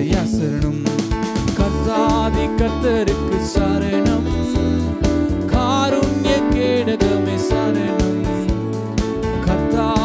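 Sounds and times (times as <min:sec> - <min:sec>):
man singing with vibrato: 0:00.0 - 0:10.0
steady beat: 0:00.0 - 0:10.0
sustained keyboard chords: 0:00.0 - 0:10.0.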